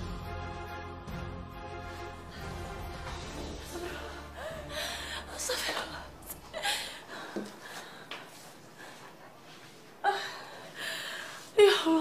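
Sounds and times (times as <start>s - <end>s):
woman gasping: 3.7s - 8.2s, 10.0s - 12.0s.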